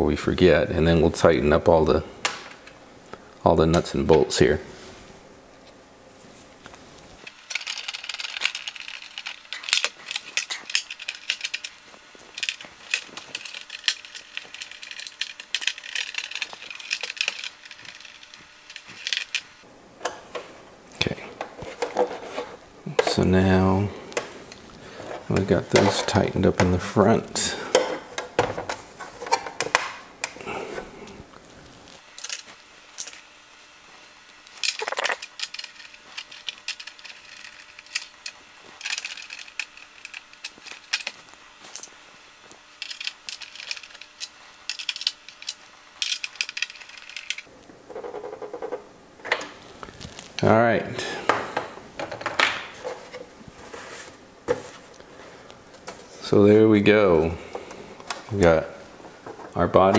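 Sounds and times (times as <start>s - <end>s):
screws clattering on plastic: 7.5s - 19.5s, 34.6s - 41.2s, 42.8s - 49.5s.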